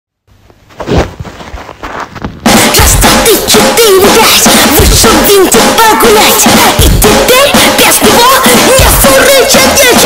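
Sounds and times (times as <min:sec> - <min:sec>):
children's cartoon song: 0:02.5 - 0:10.0.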